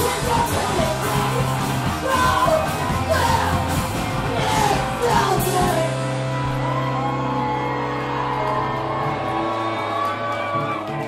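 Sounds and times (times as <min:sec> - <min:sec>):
punk band playing: 0:00.0 - 0:11.0
yelled vocals: 0:00.0 - 0:11.0.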